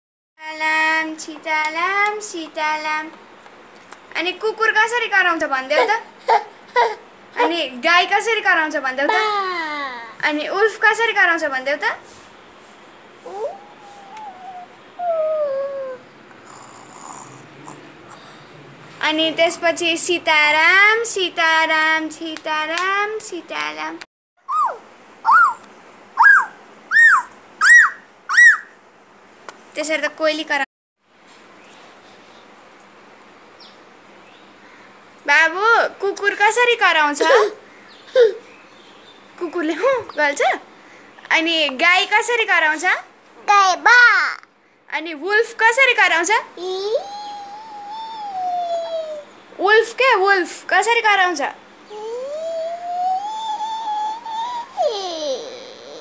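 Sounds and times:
toddler imitating animal call: 13.2 - 17.4, 46.6 - 49.3, 51.9 - 56.0.

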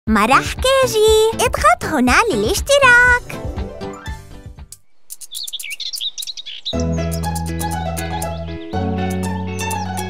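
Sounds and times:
children's song bass and chords: 0.1 - 4.7, 6.8 - 10.0
bird chirps: 4.8 - 10.0.

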